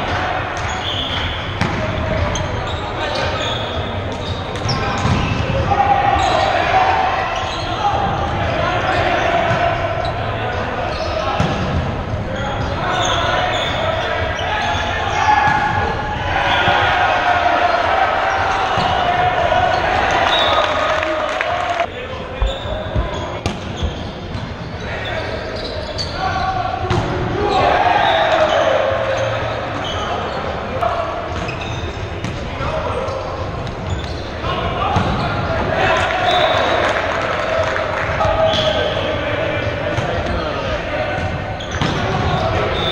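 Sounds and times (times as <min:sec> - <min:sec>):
volleyballs struck and bouncing: 0:00.0 - 0:02.4, 0:03.2 - 0:05.7, 0:11.4 - 0:12.2
players shouting and chatting: 0:00.0 - 0:42.9.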